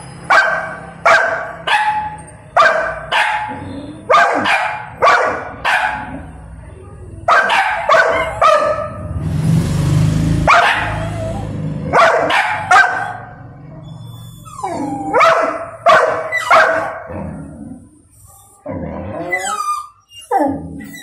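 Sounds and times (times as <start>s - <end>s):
dog barking: 0.3s - 6.3s, 7.2s - 9.0s, 10.4s - 13.4s, 15.1s - 17.1s
dog whining: 10.8s - 11.6s, 13.8s - 15.6s, 16.3s - 21.0s.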